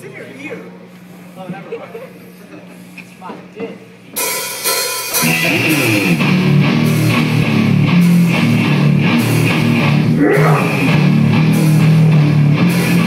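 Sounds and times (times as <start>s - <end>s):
live rock band playing: 4.2s - 13.0s.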